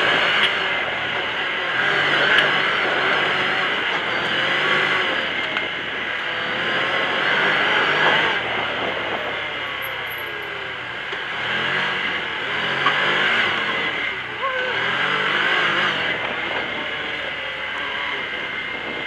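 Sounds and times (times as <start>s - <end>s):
constant rushing noise: 0.0s - 19.0s
off-road vehicle engine revving: 0.0s - 19.0s.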